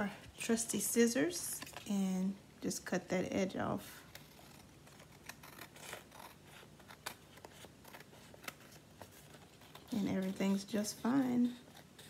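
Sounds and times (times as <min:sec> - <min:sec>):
scissors snipping paper: 0:04.1 - 0:12.0.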